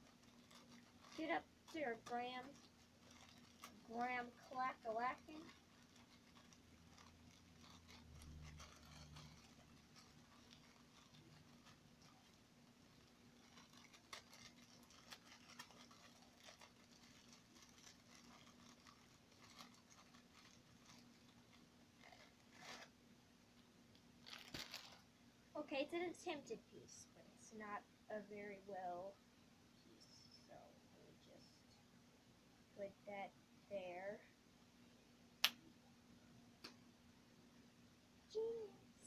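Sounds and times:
plastic sleeve crinkling: 0.0 - 23.0, 23.6 - 25.2.

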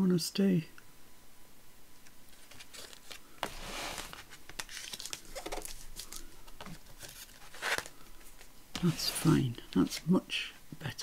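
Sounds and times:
paper rustling: 2.3 - 10.1
paper sliding rustle: 2.3 - 10.1.

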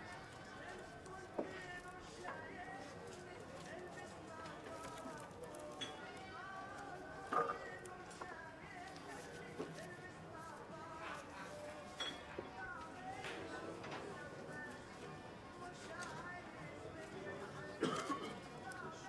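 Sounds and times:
chatter of voices: 0.0 - 19.0
music: 0.0 - 19.0.

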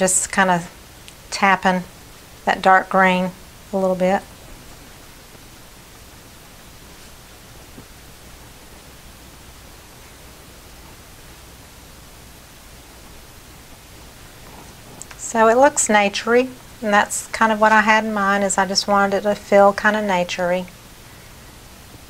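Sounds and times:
low room noise hiss: 0.0 - 22.0.

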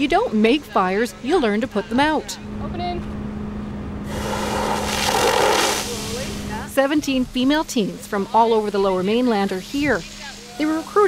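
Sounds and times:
low hum: 2.4 - 6.8
water jet spraying hiss: 4.1 - 6.7, 8.1 - 11.0.

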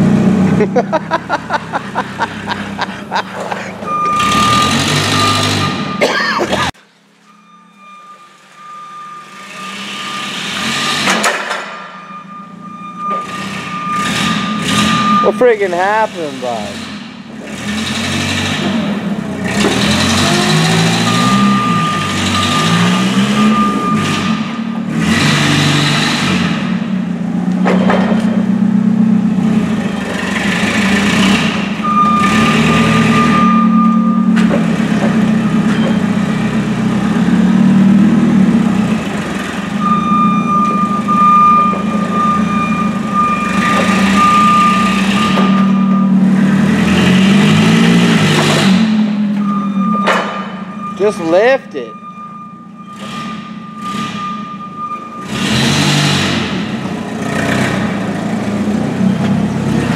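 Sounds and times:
forklift engine revving: 0.0 - 59.9
reversing alarm beeps: 3.8 - 6.0, 7.2 - 16.1, 20.2 - 24.8, 31.8 - 34.4, 39.7 - 46.6, 48.6 - 56.3.

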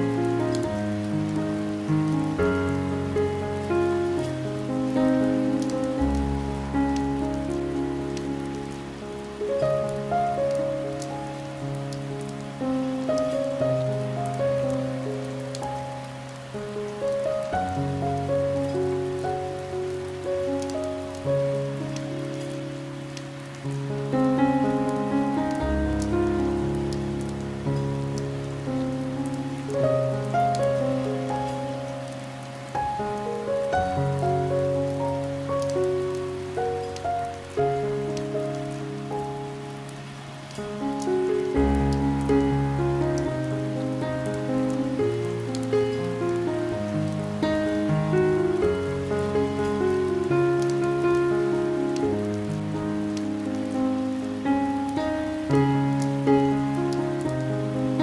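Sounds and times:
rain pattering on window glass: 0.0 - 58.0
slow piano music: 0.0 - 58.0.

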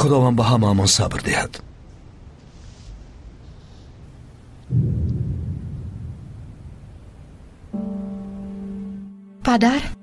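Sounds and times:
deep low boom: 4.7 - 7.8.

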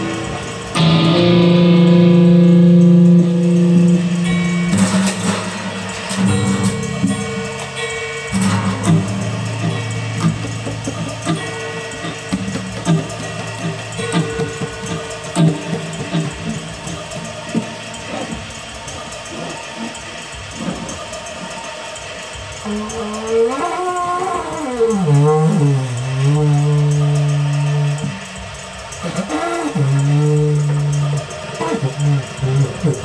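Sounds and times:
electric guitar effect noise: 0.0 - 21.2
wooden tube blown like a horn: 22.6 - 28.2, 29.0 - 33.0.

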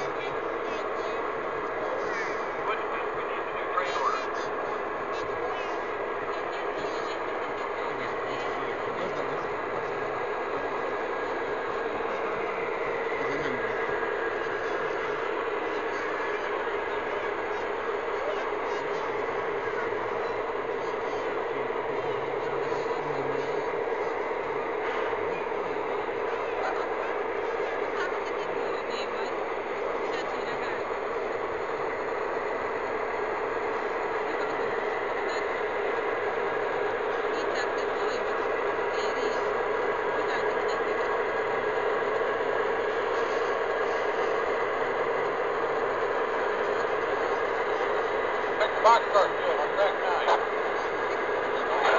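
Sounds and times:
model locomotive drone: 0.0 - 51.9
voices murmuring: 0.0 - 51.9.

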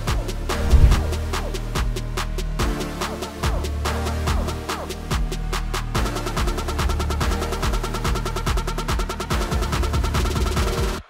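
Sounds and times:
music with fast drum beat: 0.0 - 11.0.

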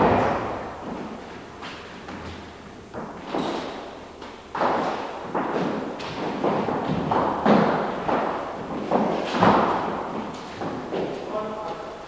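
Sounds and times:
feet stamping on floor: 0.0 - 11.8.

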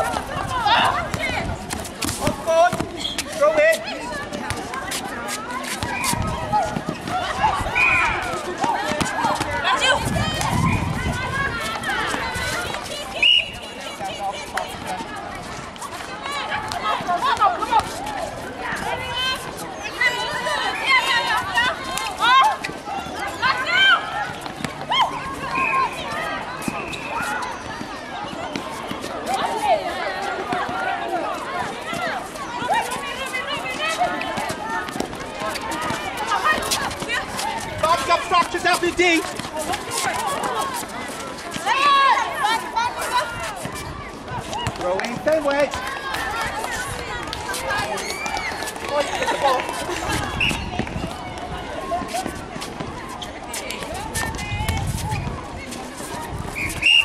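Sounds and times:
players calling and shouting: 0.0 - 57.0
running footsteps: 0.0 - 57.0.

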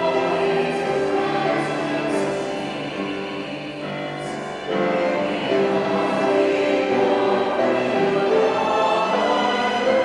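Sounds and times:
choir singing slow chords: 0.0 - 10.0.

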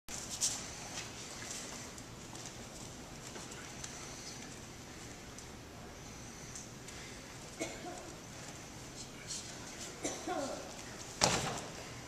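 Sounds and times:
steady room hiss: 0.1 - 12.0.

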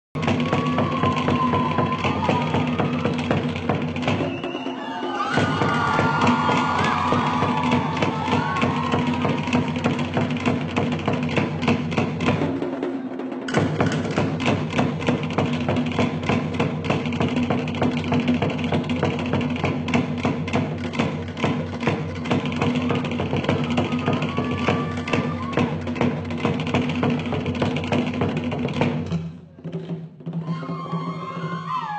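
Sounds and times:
fast percussion drumbeat: 0.2 - 31.9
deep bass drum: 5.3 - 12.5.

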